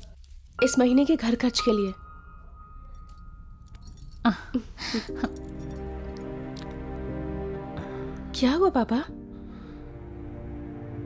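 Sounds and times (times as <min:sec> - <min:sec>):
faint light clinks: 0:00.6 - 0:06.4
thin high tone: 0:00.6 - 0:07.4.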